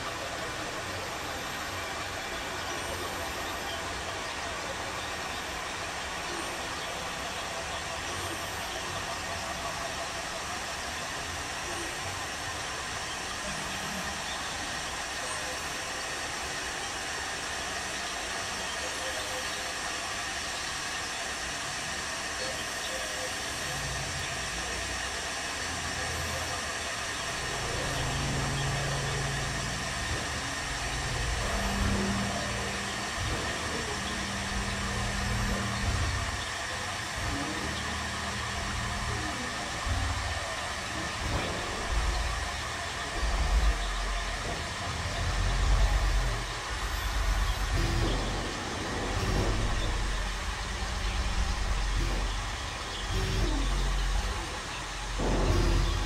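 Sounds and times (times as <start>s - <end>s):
synthesizer hiss: 0.0s - 56.0s
low synth tones: 26.2s - 56.0s.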